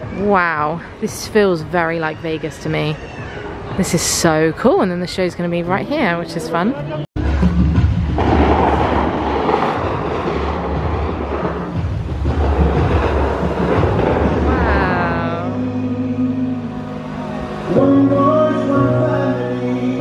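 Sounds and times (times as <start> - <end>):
music with heavy bass over loudspeakers: 7.2 - 20.0.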